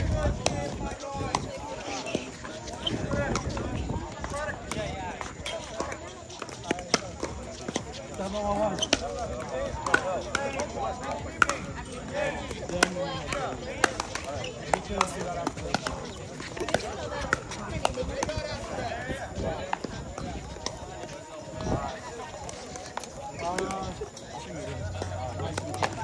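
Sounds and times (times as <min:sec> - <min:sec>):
people talking: 0:00.0 - 0:26.0
paddles hitting plastic ball: 0:04.6 - 0:11.7, 0:12.5 - 0:18.7.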